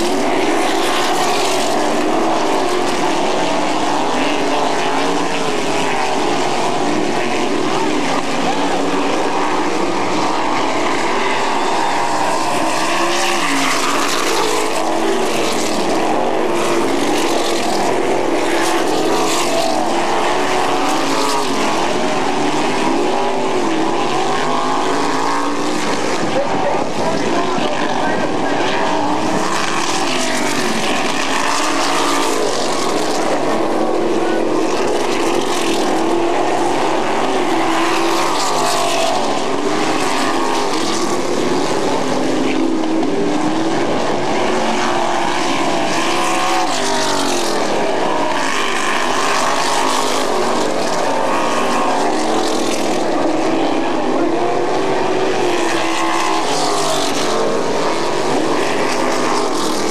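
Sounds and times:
racing car engines passing: 0.0s - 59.9s.

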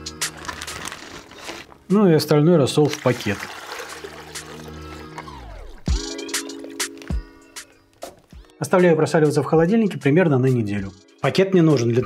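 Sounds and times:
plastic bag crinkling: 0.0s - 1.9s
background music: 0.0s - 12.0s.

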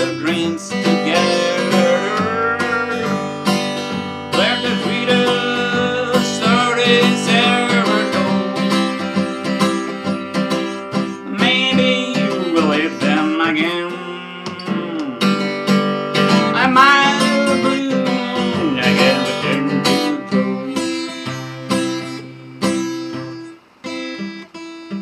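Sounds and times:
man singing: 0.0s - 15.5s, 16.2s - 21.5s
acoustic guitar strumming: 0.0s - 25.0s.

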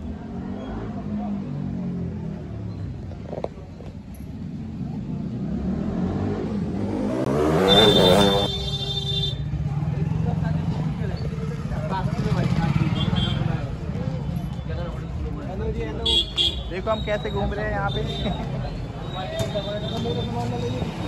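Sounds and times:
people's voices: 7.5s - 21.0s.

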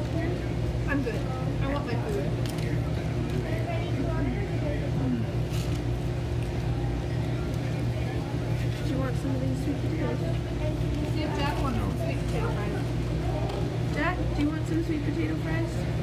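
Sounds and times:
faint background talk: 0.0s - 16.0s
low machine hum: 0.0s - 16.0s.

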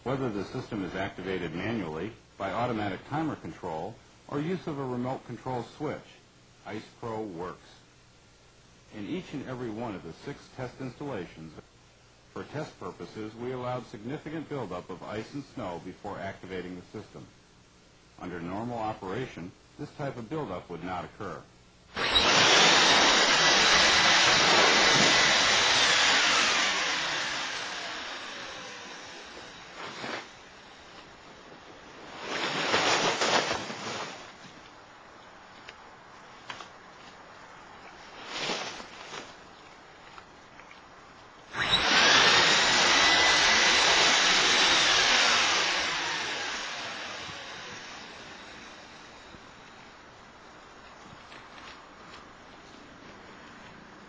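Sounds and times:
faint whine: 0.0s - 54.0s
loud rushing air noise: 22.0s - 30.4s
air rushing into inflatable: 31.9s - 34.4s.

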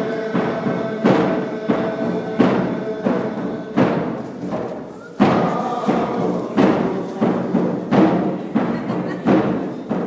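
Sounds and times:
deep drum beats: 0.0s - 10.0s
faint voices: 4.7s - 10.0s.

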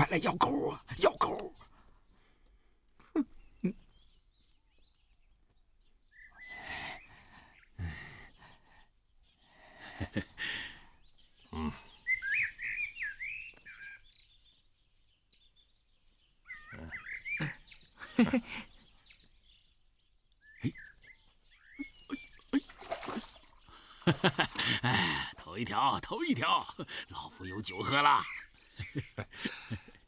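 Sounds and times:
songbird chirping: 0.0s - 30.0s.

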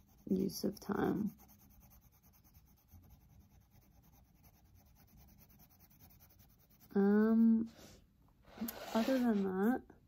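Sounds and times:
pencil scratching on paper: 0.0s - 8.0s, 8.6s - 9.8s.

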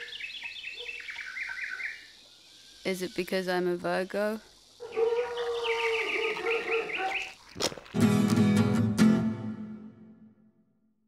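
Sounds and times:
dog howling: 4.8s - 7.3s.

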